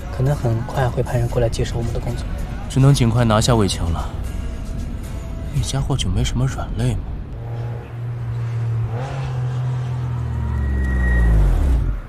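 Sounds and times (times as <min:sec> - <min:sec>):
car engine running: 0:00.0 - 0:12.0
engine revving: 0:07.2 - 0:12.0.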